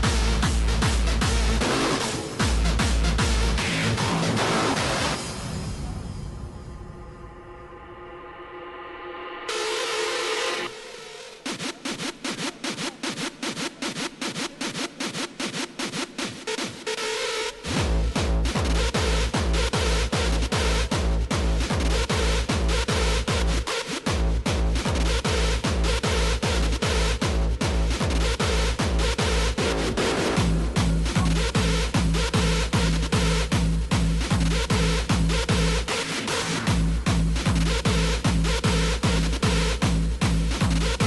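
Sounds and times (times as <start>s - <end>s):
heavy bass kick: 0.0s - 6.2s, 17.6s - 41.0s
hardstyle dance music: 0.0s - 41.0s.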